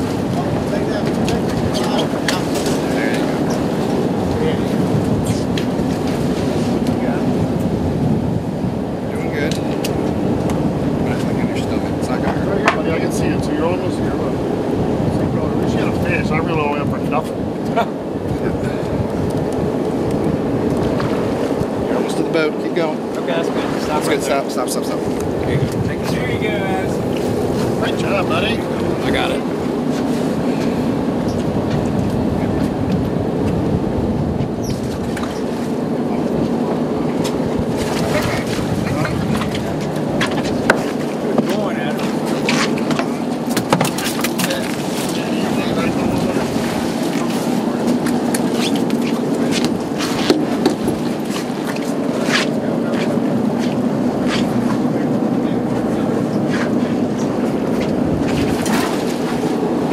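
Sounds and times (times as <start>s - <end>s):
boat engine droning: 0.0s - 59.9s.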